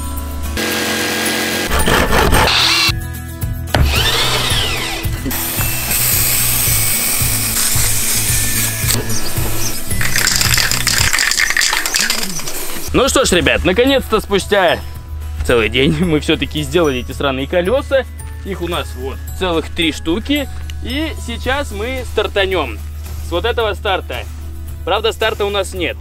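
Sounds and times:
electric jigsaw cutting plywood: 0.6 - 2.9, 3.8 - 8.9
background music with steady beat: 2.9 - 11.1, 12.5 - 26.0
spray paint can hissing: 6.0 - 12.9.

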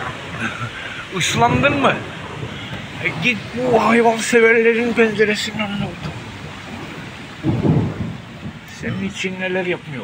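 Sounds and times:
steady rain falling: 0.0 - 10.0.

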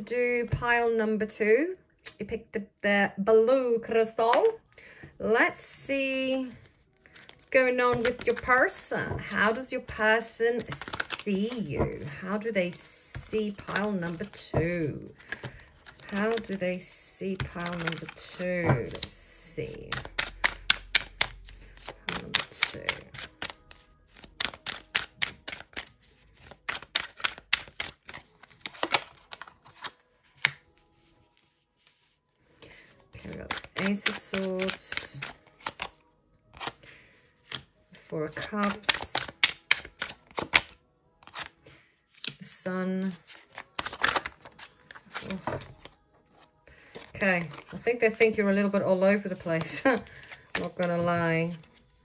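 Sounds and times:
cards being shuffled: 6.1 - 52.0.

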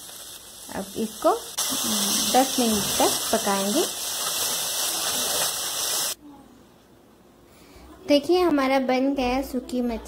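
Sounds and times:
curry sizzling: 0.0 - 6.2.

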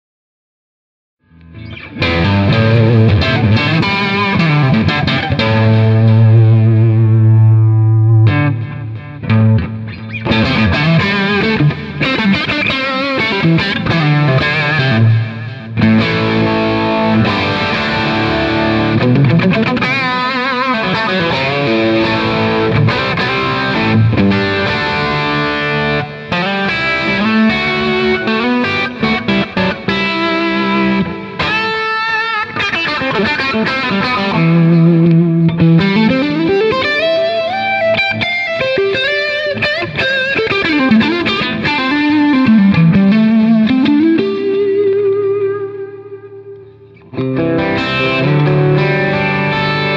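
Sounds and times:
electric guitar solo: 1.3 - 49.9.

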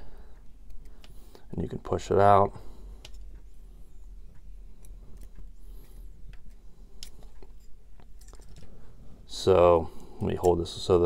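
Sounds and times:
low steady hum: 0.0 - 11.0
small metallic clicks: 4.3 - 8.8.

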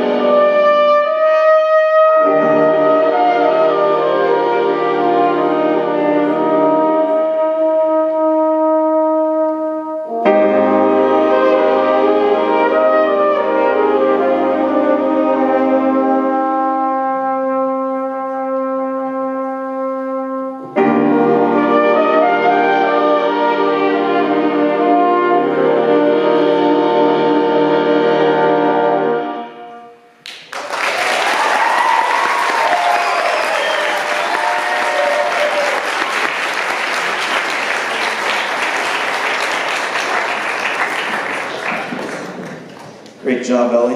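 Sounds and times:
jazz big band holding chords: 0.0 - 30.1
audience applause: 30.2 - 43.2.

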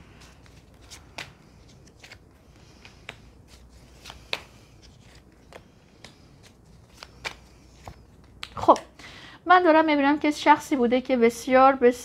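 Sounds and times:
cards clicking and flicking: 0.4 - 3.3, 3.9 - 8.9.

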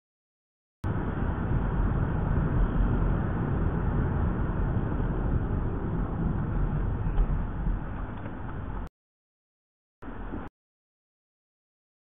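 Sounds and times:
car interior road and engine rumble: 0.8 - 8.9, 10.0 - 10.5.

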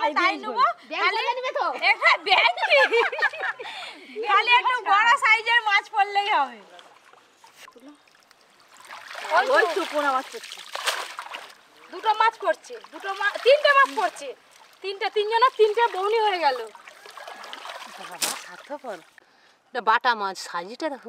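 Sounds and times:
water splashing and trickling: 2.6 - 19.2
women talking: 9.2 - 10.4, 11.9 - 16.8.

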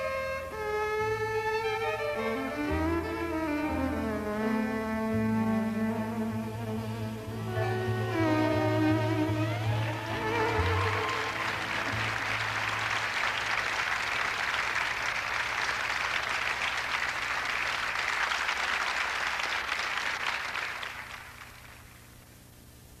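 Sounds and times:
studio audience applauding: 9.5 - 22.1.

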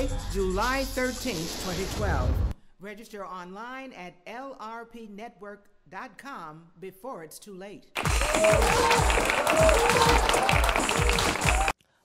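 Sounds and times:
theme music with heavy bass beat: 8.0 - 11.7.

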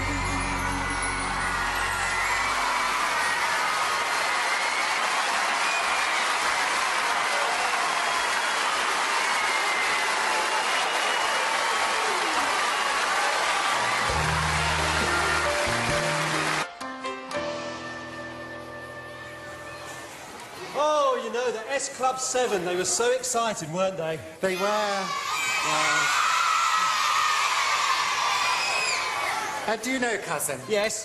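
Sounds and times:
bass-heavy music: 0.0 - 3.0, 14.1 - 16.6
audience applauding and cheering: 0.0 - 17.2, 24.6 - 29.7.

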